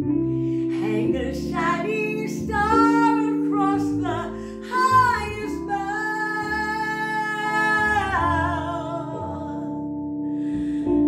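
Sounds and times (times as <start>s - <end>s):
instrumental backing: 0.0s - 11.0s
woman singing: 0.7s - 9.8s.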